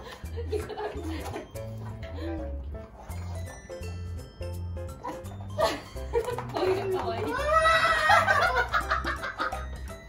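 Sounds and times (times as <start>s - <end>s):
background music with steady beat: 0.0s - 10.0s
high-pitched cackling laughter: 7.4s - 9.6s.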